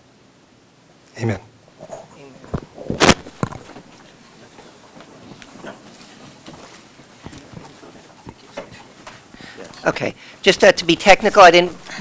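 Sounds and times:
chairs knocking and shuffling: 1.8 - 10.0
footsteps on floor: 3.6 - 9.8.

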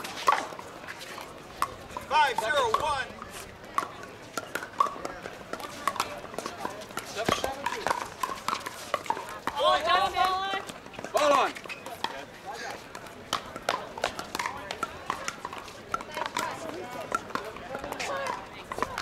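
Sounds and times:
paddles striking plastic balls: 0.0 - 19.0.

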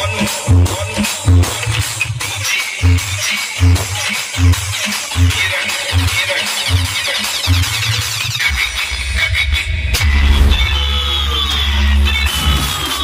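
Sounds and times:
electronic dance music: 0.0 - 13.0
sustained deep bass: 9.0 - 11.3
heavy bass kicks: 9.8 - 11.0.

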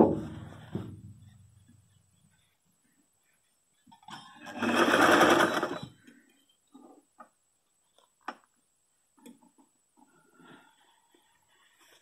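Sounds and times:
electric sewing machine stitching: 4.4 - 5.9.

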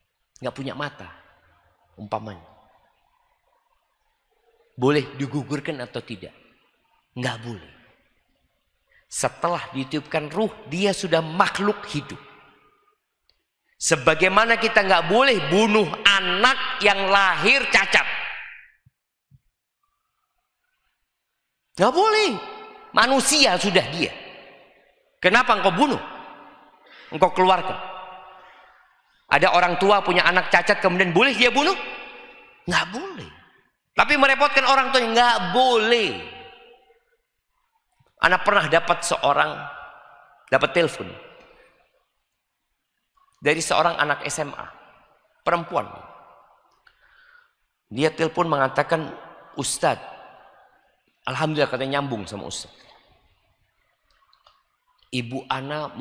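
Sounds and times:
man speaking into microphone: 0.4 - 1.2, 2.0 - 2.6, 4.8 - 6.4, 7.2 - 7.8, 9.1 - 12.2, 13.8 - 18.4, 21.8 - 24.2, 25.2 - 26.1, 27.0 - 28.0, 29.3 - 32.0, 32.7 - 33.4, 34.0 - 36.4, 38.2 - 39.8, 40.5 - 41.3, 43.4 - 44.8, 45.5 - 46.2, 47.9 - 50.1, 51.3 - 52.8, 55.2 - 56.0.

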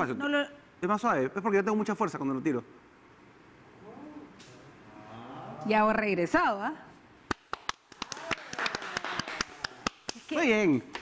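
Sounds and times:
hands clapping: 7.3 - 11.0.

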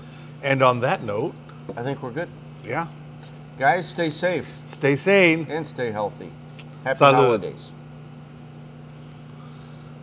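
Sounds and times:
low room tone hum: 0.0 - 10.0.

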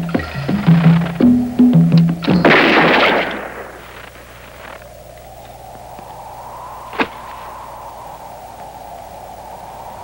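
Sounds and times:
revolver gunshot: 2.3 - 3.9.

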